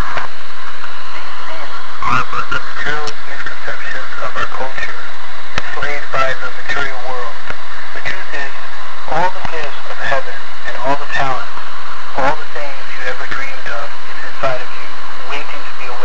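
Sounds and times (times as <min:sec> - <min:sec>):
recording hiss: 0:00.0 - 0:16.0
person talking: 0:01.2 - 0:05.0, 0:05.6 - 0:07.4, 0:08.0 - 0:11.5, 0:12.1 - 0:16.0.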